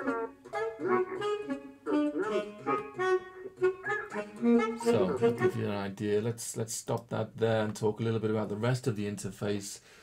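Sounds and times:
sampled instruments counterpoint: 0.0s - 5.8s
sampled baritone saxophone: 0.0s - 6.0s.

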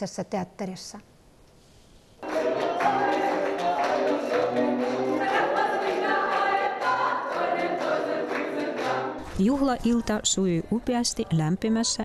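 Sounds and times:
group singing in chorus: 2.2s - 9.3s
hand claps: 2.2s - 9.4s.

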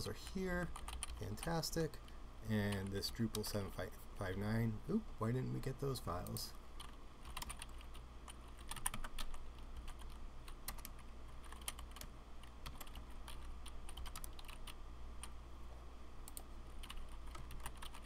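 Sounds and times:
typing on computer keyboard: 0.8s - 1.2s, 6.8s - 14.8s, 16.3s - 18.0s.

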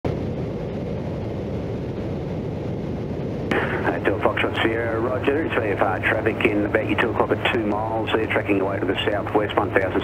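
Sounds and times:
light aircraft engine drone: 0.1s - 10.0s
radio call: 3.5s - 10.0s.

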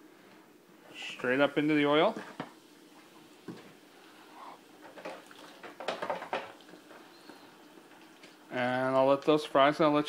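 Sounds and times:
oil sizzling in deep fryer: 0.9s - 9.6s.

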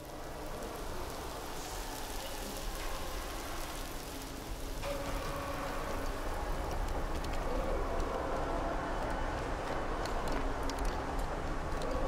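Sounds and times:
rain-like noise texture: 0.0s - 12.0s.

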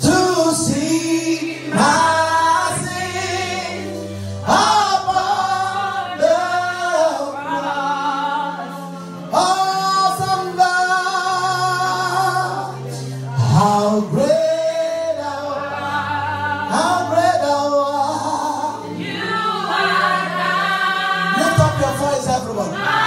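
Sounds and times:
man singing into microphone: 0.0s - 19.0s, 21.2s - 22.8s.

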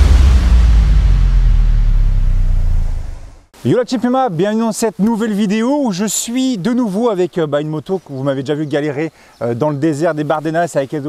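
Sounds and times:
deep bass rumble: 0.0s - 3.5s.

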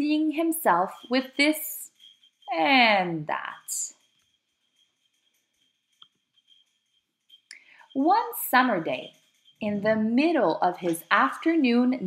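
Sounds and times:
woman speaking: 0.0s - 1.9s, 2.5s - 3.9s, 8.0s - 12.0s
breath: 7.5s - 8.0s.

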